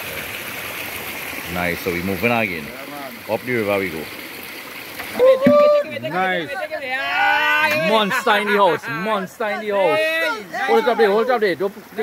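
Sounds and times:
flowing river water: 0.0s - 12.0s.

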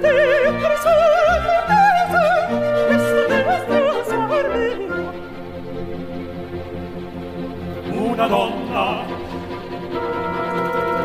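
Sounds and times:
opera singer with vibrato: 0.0s - 5.4s, 7.8s - 9.4s
orchestra playing: 0.0s - 11.0s.

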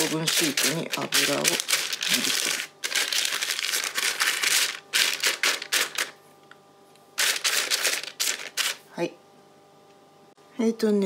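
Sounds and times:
brush scrubbing on paper: 0.0s - 6.1s
paper crinkling: 0.0s - 6.2s, 7.2s - 8.8s.

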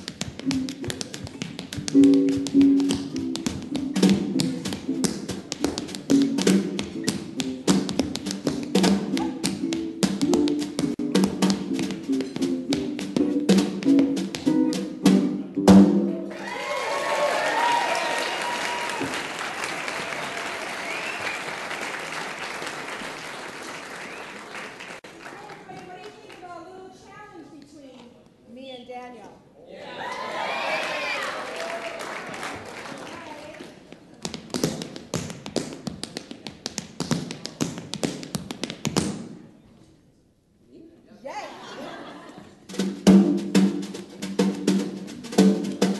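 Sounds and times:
tap shoes: 0.0s - 14.9s, 33.9s - 39.3s
guitar chords: 0.4s - 16.3s
snare drum: 1.8s - 16.2s, 42.7s - 45.9s
whoops and cheers: 16.3s - 21.5s, 29.8s - 32.4s
audience applause: 16.3s - 25.8s, 30.0s - 33.6s.

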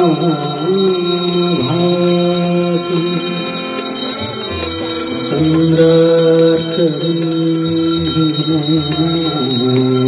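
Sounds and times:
bells ringing: 0.0s - 10.0s
person chanting long notes: 0.0s - 10.0s.

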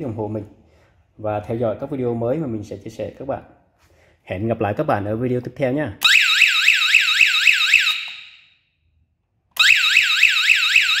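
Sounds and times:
electronic alarm siren warbling: 6.0s - 8.4s, 9.6s - 11.0s.

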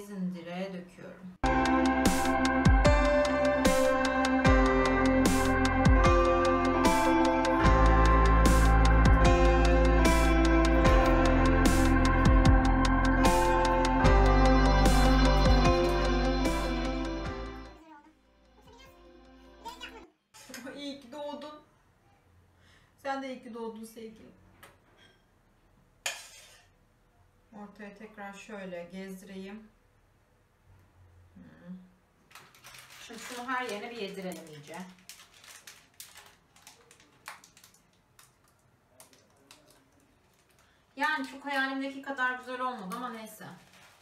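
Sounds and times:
woman speaking: 0.0s - 1.4s, 20.5s - 21.7s, 23.0s - 24.4s, 27.5s - 29.7s, 33.0s - 35.0s, 41.0s - 43.6s.

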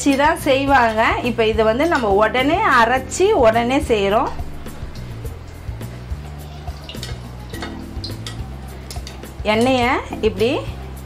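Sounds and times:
background music: 0.0s - 11.0s
hot oil being poured: 4.4s - 9.2s.

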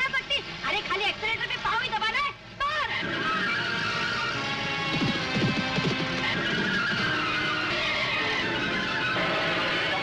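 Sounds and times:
tyres skidding on dirt road: 2.7s - 10.0s
van engine running hard: 2.9s - 10.0s.

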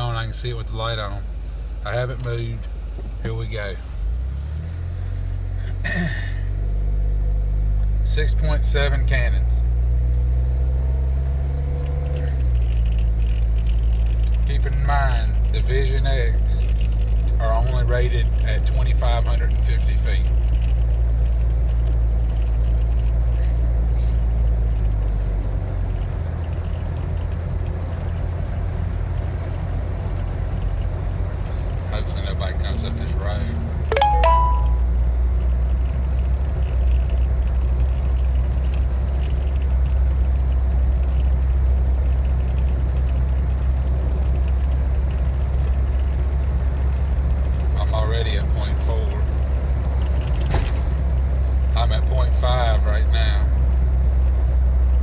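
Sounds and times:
car engine and road noise: 0.0s - 55.0s.

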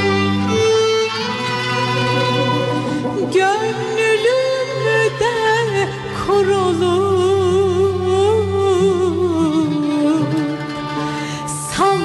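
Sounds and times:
plucked strings: 0.0s - 12.0s
violin melody: 0.0s - 12.0s.

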